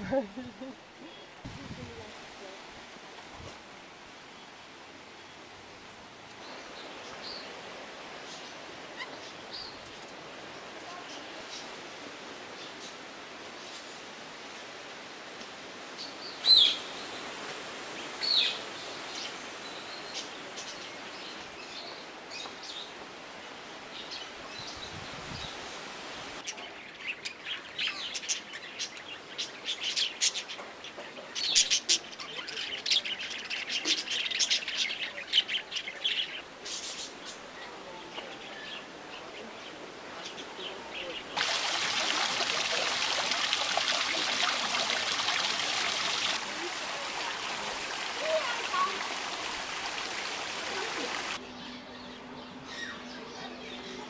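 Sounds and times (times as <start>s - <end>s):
running water: 39.9s - 51.4s.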